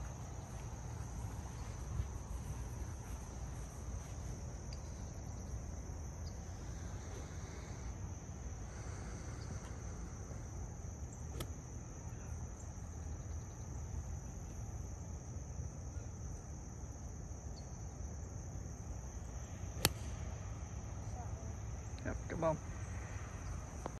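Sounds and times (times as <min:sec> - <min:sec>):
insects trilling: 0:00.0 - 0:23.9
golf club striking ball: 0:19.8 - 0:20.2.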